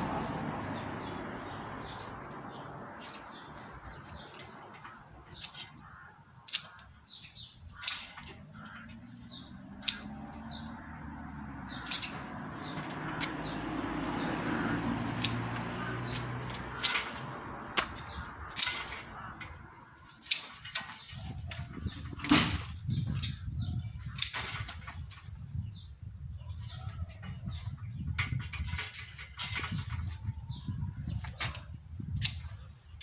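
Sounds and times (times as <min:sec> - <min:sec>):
pruning shears snipping: 0:03.0 - 0:22.7, 0:31.2 - 0:33.0.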